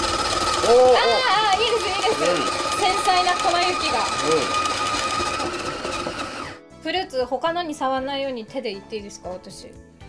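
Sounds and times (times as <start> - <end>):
shaved-ice machine motor whirring: 0.0 - 6.6.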